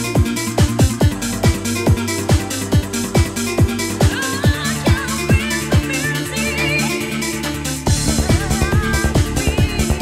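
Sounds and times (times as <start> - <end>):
dance music: 0.0 - 10.0
synth chords and bass: 0.0 - 10.0.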